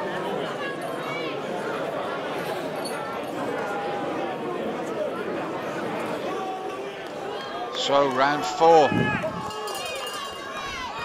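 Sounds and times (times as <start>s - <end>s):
people shouting: 7.3s - 11.0s
high-pitched shout: 8.8s - 11.0s.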